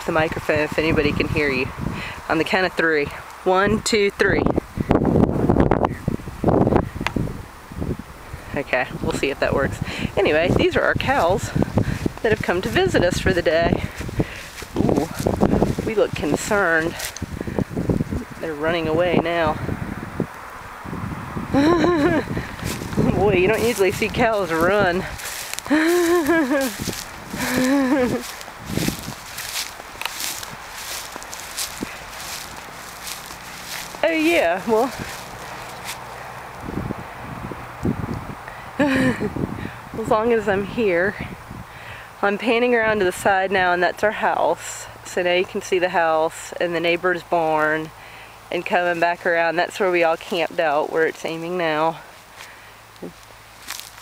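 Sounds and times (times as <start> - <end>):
wind buffeting microphone: 0.0 - 43.8
footsteps through grass: 10.2 - 18.4, 21.6 - 36.9, 48.8 - 54.0.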